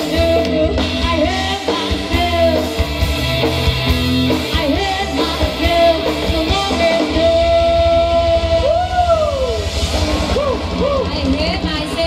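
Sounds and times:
woman singing: 0.0s - 2.8s, 4.4s - 9.1s
drum kit: 0.0s - 12.0s
electric guitars: 0.0s - 12.0s.

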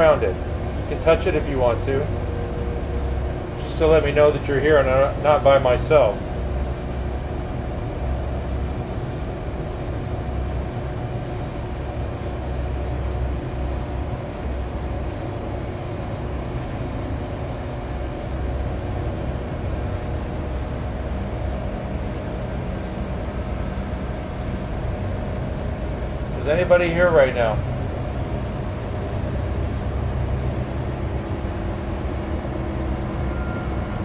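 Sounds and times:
building machinery humming: 0.0s - 34.0s.

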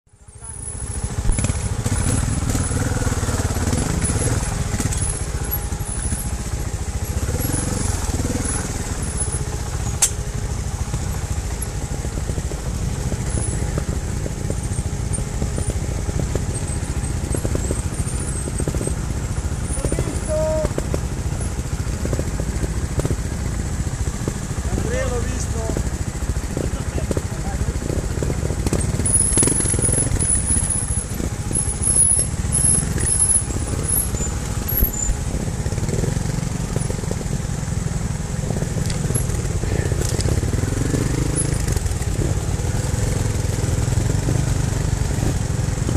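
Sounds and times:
motorcycle engine at low revs: 0.1s - 45.9s
sharp click: 10.0s - 10.2s.

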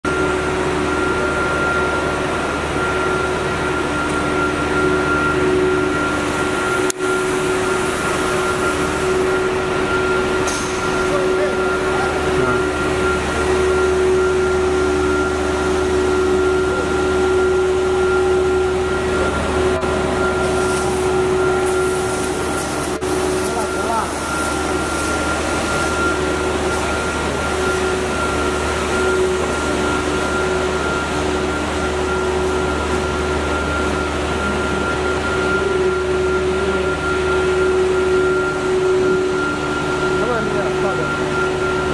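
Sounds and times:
factory machine hum: 0.0s - 41.9s.

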